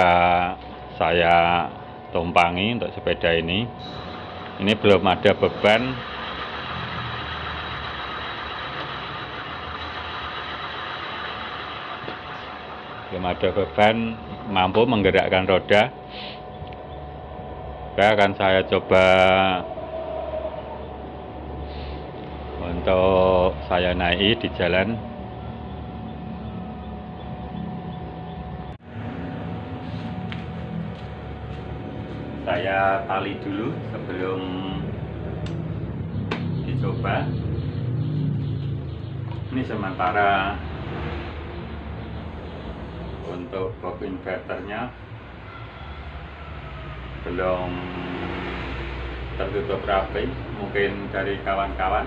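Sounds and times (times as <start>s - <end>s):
electric hub motor running: 0.0s - 52.0s
thin steady whine: 0.0s - 52.0s
electric motor hum: 3.8s - 15.1s.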